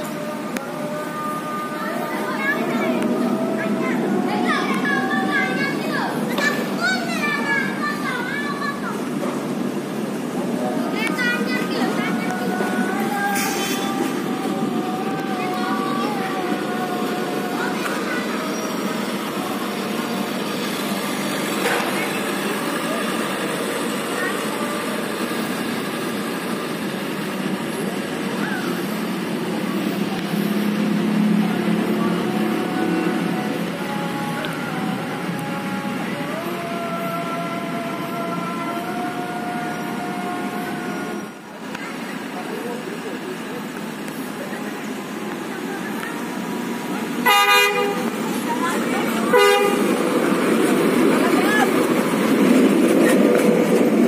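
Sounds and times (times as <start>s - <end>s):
rail vehicle engine: 0.0s - 54.0s
train horn blast: 47.2s - 48.2s, 49.3s - 50.1s.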